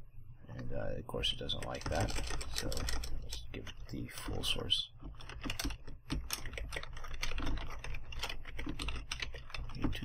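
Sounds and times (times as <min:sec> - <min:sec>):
typing on computer keyboard: 0:01.5 - 0:04.4, 0:05.0 - 0:10.0.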